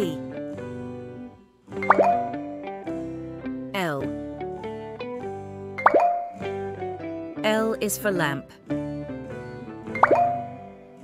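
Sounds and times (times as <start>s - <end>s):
plucked children's music: 0.0s - 11.0s.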